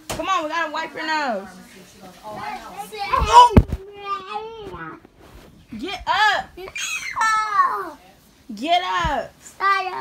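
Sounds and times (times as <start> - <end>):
small child's voice: 1.4 - 5.0, 6.6 - 8.0, 9.5 - 10.0.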